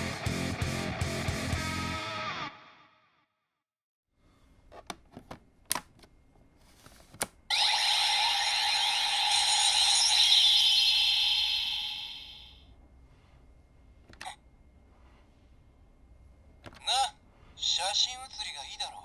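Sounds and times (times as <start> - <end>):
buzzy electronic toy sound effect: 7.5 - 12.6.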